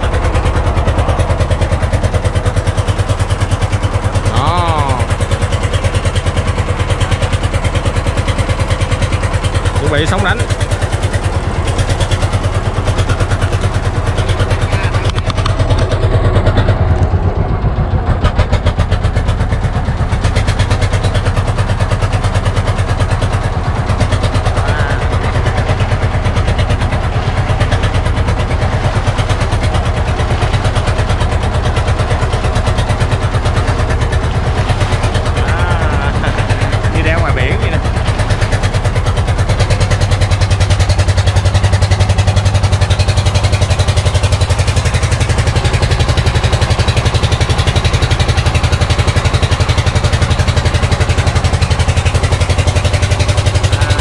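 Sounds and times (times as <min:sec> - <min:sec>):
boat engine drone: 0:00.0 - 0:54.0
wake splashing along hull: 0:00.0 - 0:54.0.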